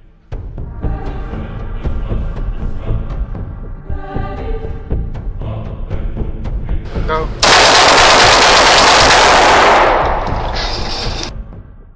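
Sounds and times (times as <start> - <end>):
rapid pistol fire indoors: 7.4 - 11.3.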